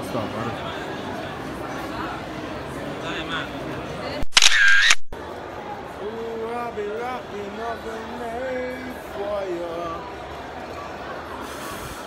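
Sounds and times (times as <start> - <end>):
camera shutter sound effect: 4.2 - 5.2.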